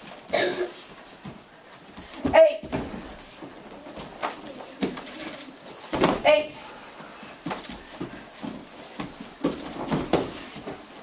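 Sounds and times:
person coughing: 0.3s - 0.8s.

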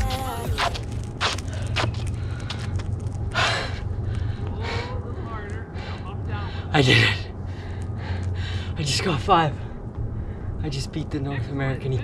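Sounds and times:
footsteps on asphalt: 0.0s - 6.7s, 7.3s - 10.6s
low wind rumble on microphone: 0.0s - 12.0s
man breathing hard: 1.3s - 5.1s, 7.4s - 8.8s.

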